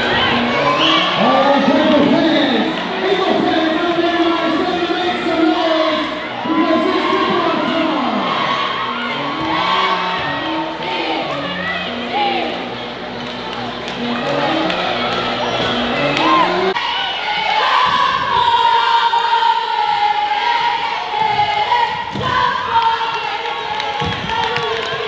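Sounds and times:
girls shouting and cheering: 0.0s - 3.2s, 4.4s - 12.8s, 14.0s - 25.0s
crowd noise: 0.0s - 25.0s
music: 0.0s - 25.0s.

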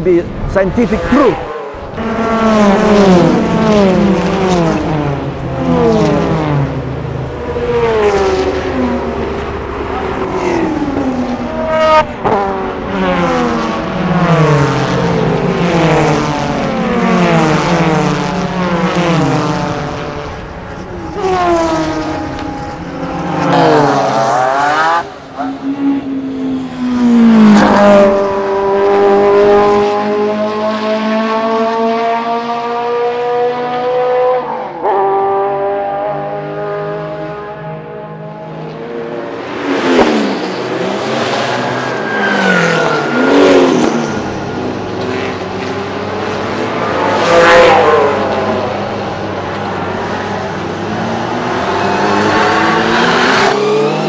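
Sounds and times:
car engine revving: 0.2s - 54.0s.

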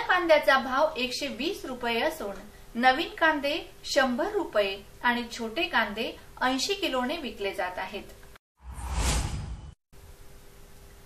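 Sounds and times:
whoosh sound effect: 8.6s - 9.8s.

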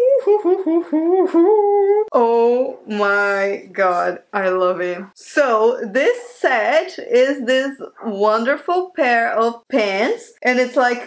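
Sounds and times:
woman humming a tune: 0.0s - 2.7s.

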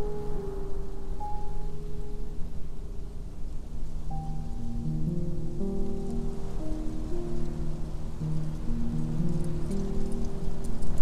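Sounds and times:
slow solo piano: 0.0s - 11.0s
steady noisy hiss: 0.0s - 11.0s.

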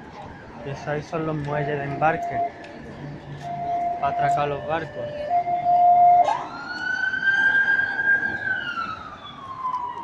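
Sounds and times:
emergency vehicle siren wailing: 0.0s - 10.0s.

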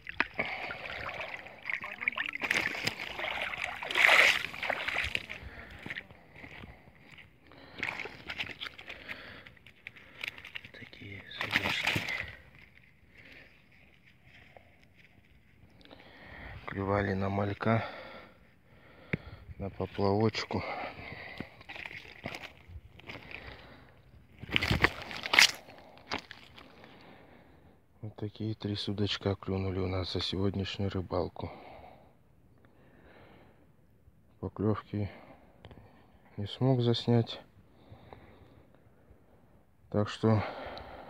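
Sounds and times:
water sloshing and splashing: 0.0s - 6.8s, 7.5s - 13.4s, 21.2s - 23.6s, 24.4s - 26.8s.

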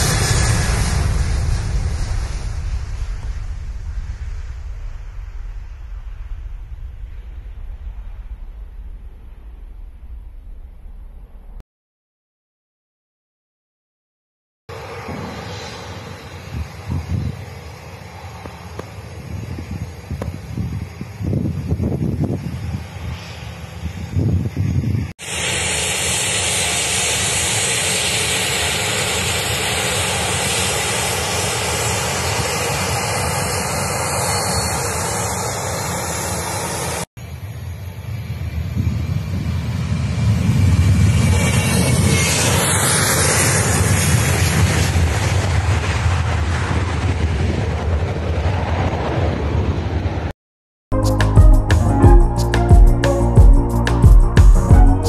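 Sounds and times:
jet engines during take-off: 0.0s - 11.6s, 14.7s - 50.4s.

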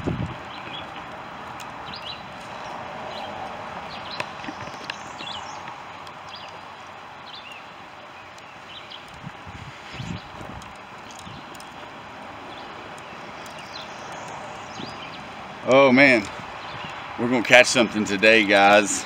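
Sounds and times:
small birds chirping: 0.0s - 19.0s
wind buffeting microphone: 0.0s - 19.0s
wind rushing through trees: 0.0s - 19.0s.

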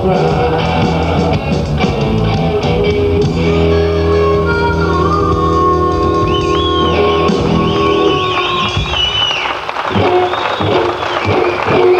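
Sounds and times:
electric guitar bending high notes: 0.0s - 11.9s
live blues band: 0.0s - 11.9s.

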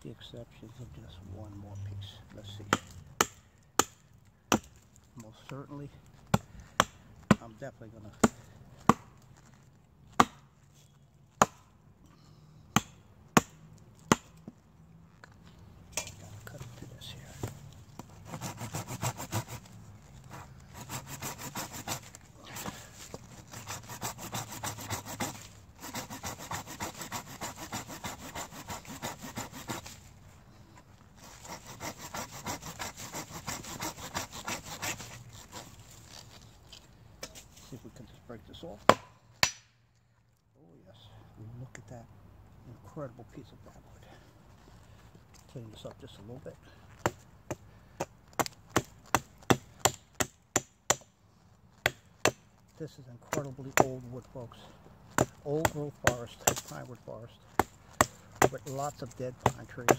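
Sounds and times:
hand saw cutting wood: 18.0s - 30.0s, 31.2s - 36.3s, 48.4s - 51.0s, 53.3s - 54.5s, 55.1s - 59.9s.

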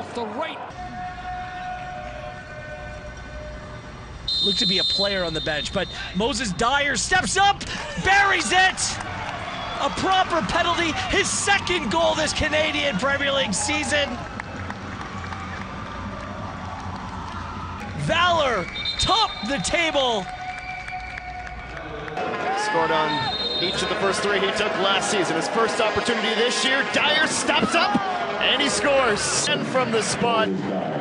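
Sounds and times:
low stadium rumble: 0.7s - 31.0s.

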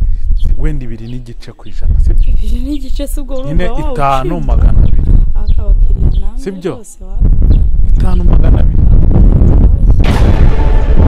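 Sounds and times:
loud rumbling boom: 7.2s - 11.0s.

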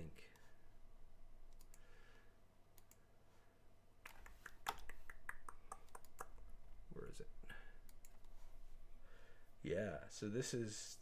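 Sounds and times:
computer mouse clicks: 1.5s - 1.8s, 2.8s - 3.0s, 7.8s - 8.4s.

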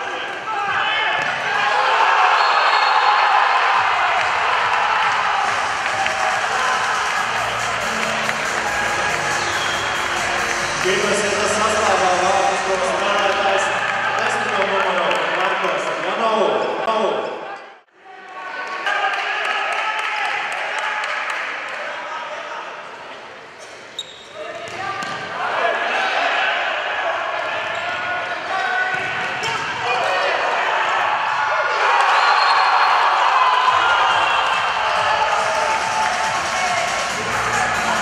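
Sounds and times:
spectators background noise: 0.0s - 14.4s, 22.3s - 38.0s.

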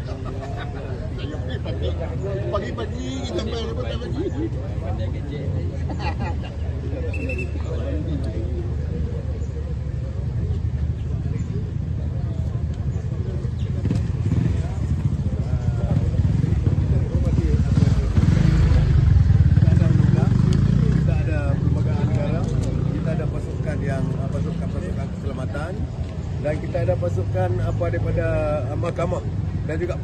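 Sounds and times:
crowd talking: 0.0s - 30.0s.

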